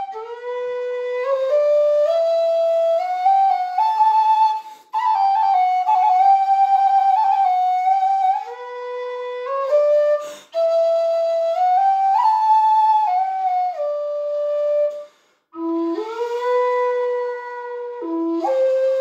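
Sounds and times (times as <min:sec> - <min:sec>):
low whistle playing slow tune: 0:00.0 - 0:19.0.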